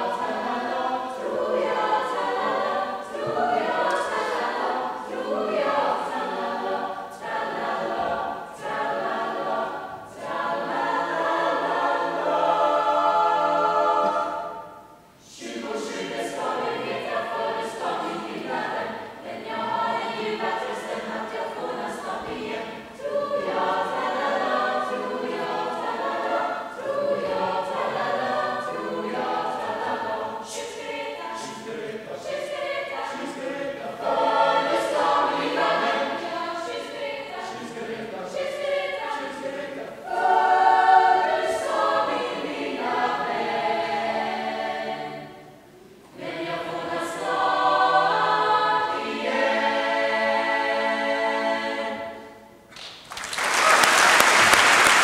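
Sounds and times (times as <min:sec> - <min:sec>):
mixed choir singing a cappella: 0:00.0 - 0:52.7.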